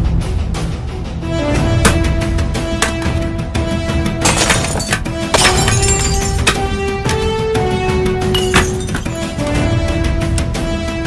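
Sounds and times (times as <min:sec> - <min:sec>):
dramatic film score: 0:00.0 - 0:11.0
glass shattering: 0:04.2 - 0:06.6, 0:08.3 - 0:09.3
picture frames crashing on floor: 0:04.2 - 0:06.6.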